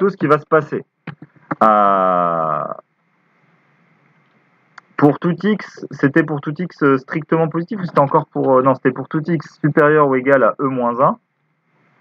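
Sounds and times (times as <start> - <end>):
person speaking: 0.0 - 2.8, 4.7 - 11.2
faint room hiss: 0.0 - 12.0.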